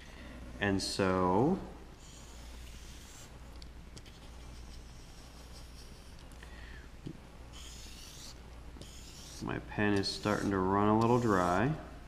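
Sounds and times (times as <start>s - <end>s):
marker scratching on paper: 2.0s - 3.3s, 4.0s - 6.2s, 7.5s - 11.7s.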